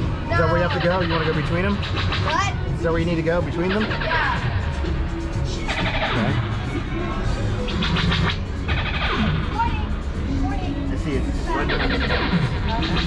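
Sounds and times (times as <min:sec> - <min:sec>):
background music with singing: 0:03.4 - 0:13.0.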